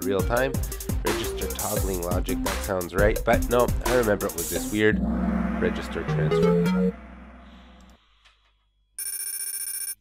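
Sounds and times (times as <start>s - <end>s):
bright electronic ringing tone: 9.0s - 10.0s.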